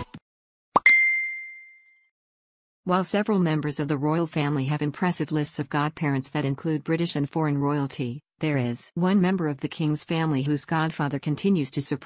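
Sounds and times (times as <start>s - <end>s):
bright bell-like ding: 0.8s - 2.1s.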